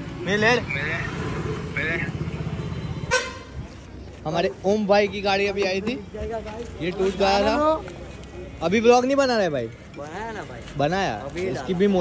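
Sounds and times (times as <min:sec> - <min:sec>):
vehicle engine running: 0:00.0 - 0:03.1
short high horn toot: 0:03.1 - 0:03.5.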